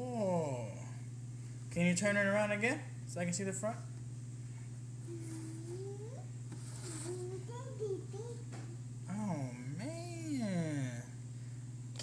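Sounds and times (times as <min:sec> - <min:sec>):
child's wordless vocal sound: 0:05.1 - 0:06.3.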